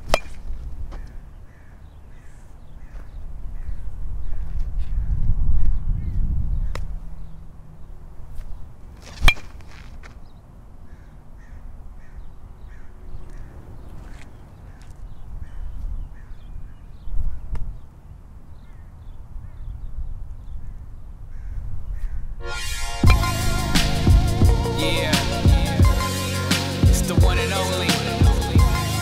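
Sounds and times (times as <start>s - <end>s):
metal bat hitting ball: 0.0s - 0.4s
crows cawing: 0.9s - 4.6s, 10.8s - 16.5s, 21.3s - 22.3s
low rumble: 12.6s - 16.1s, 22.8s - 27.4s.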